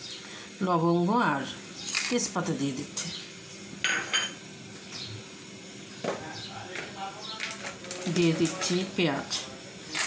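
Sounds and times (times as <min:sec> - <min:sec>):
dishes clinking: 0:03.8 - 0:04.4.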